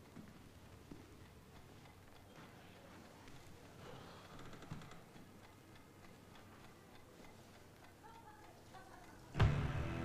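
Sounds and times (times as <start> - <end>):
clock ticking: 0.0 - 9.4.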